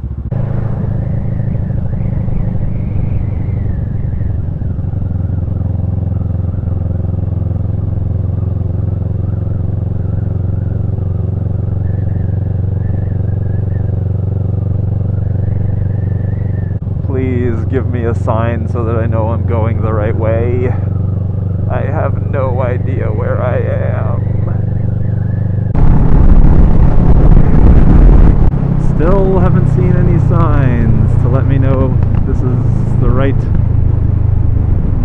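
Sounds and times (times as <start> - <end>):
motorcycle engine droning: 0.0 - 35.0.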